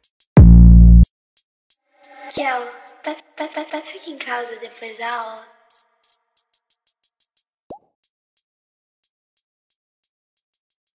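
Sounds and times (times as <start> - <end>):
hi-hat ticks: 0.0 - 0.4, 1.4 - 10.9.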